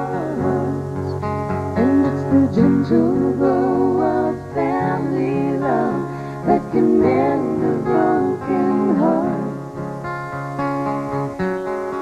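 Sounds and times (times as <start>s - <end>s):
women singing in harmony: 0.0s - 1.2s, 1.8s - 9.8s.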